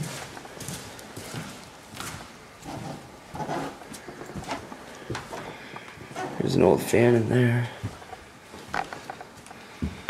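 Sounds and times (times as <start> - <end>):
footsteps walking: 0.0 - 10.0.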